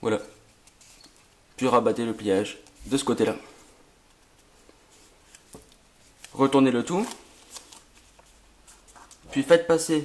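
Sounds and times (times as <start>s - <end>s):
paper rustling and crackling: 4.1s - 9.6s.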